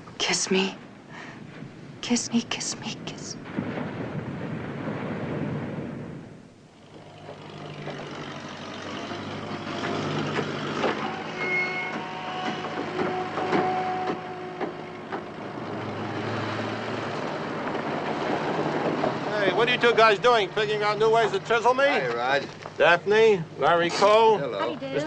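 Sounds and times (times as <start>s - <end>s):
engine humming: 2.9s - 25.0s.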